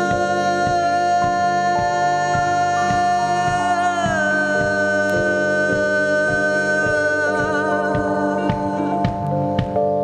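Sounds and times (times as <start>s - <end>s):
woman singing a long note: 0.0s - 9.3s
keyboards and bass: 0.0s - 10.0s
kick drum beating: 5.7s - 10.0s.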